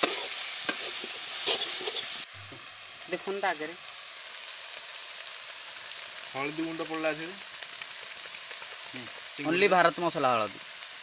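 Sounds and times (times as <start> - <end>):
prawns sizzling in oil: 0.0 - 11.0.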